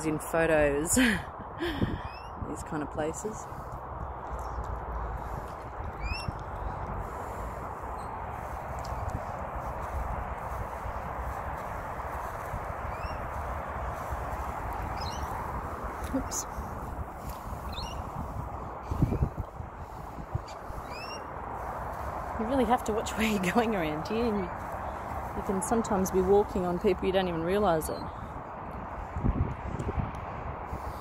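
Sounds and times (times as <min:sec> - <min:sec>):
light footsteps on grass: 0:03.2 - 0:30.7
short rising bird-like chirp: 0:06.0 - 0:06.4, 0:12.9 - 0:13.2, 0:14.9 - 0:15.4, 0:17.7 - 0:18.1, 0:20.8 - 0:21.3
bird whistled call: 0:20.8 - 0:21.3.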